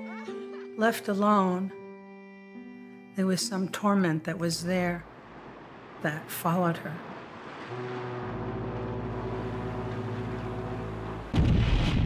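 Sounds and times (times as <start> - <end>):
low musical drone: 7.6 - 11.4
loud explosion with deep rumble: 11.3 - 12.0.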